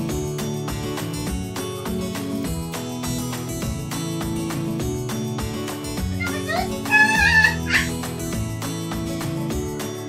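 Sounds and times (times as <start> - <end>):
background music: 0.0 - 10.0
girl crying out: 6.2 - 8.0
girl squealing: 6.2 - 8.0.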